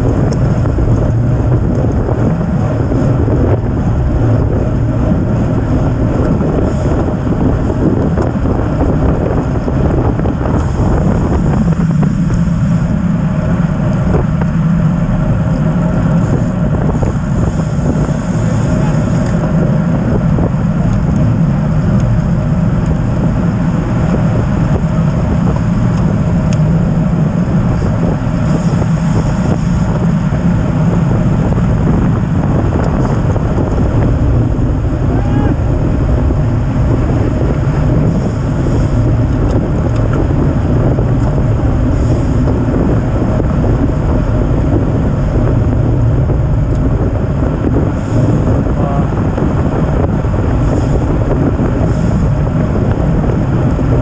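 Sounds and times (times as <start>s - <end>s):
tyres humming on road: 0.0s - 54.0s
wind rushing over microphone: 0.0s - 54.0s.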